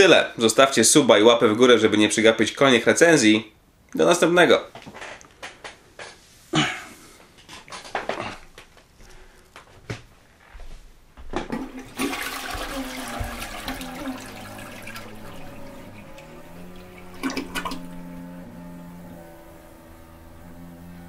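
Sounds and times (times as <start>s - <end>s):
water rushing: 11.6s - 19.1s
steady hum of tones: 12.6s - 21.0s.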